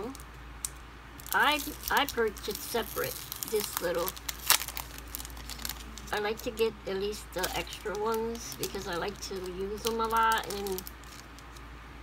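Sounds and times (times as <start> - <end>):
plastic sleeve crinkling: 0.0 - 11.7.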